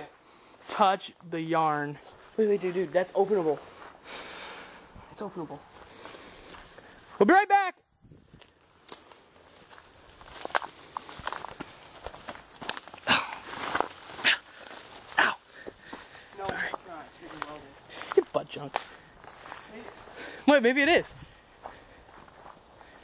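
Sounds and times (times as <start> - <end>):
twigs crackling underfoot: 0.0 - 4.8, 5.6 - 7.2, 8.2 - 20.5, 21.3 - 23.0
footsteps through dense brush: 0.0 - 7.2, 8.2 - 23.0
leaves and stems rustling: 8.3 - 20.4.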